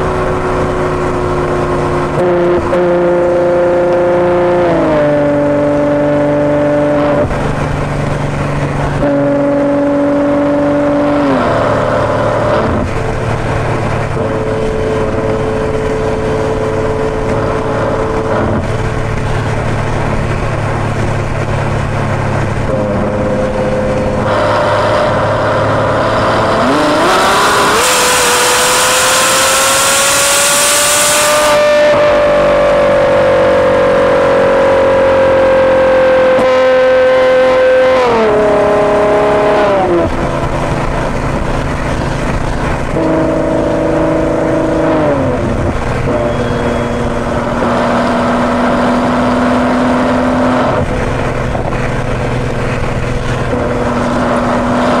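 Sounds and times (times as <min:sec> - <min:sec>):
car engine revving: 0:00.0 - 0:55.0
wind noise rushing: 0:38.1 - 0:55.0.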